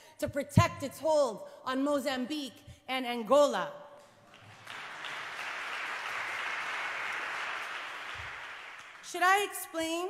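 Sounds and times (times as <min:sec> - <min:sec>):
audience applauding: 0:04.3 - 0:09.1.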